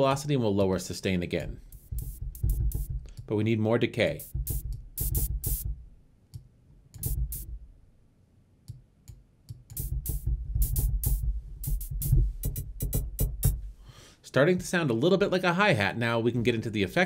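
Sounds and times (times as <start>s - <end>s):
synthesized hi-hat ticks: 1.4s - 3.4s, 4.1s - 5.8s, 7.0s - 7.6s, 8.7s - 13.7s.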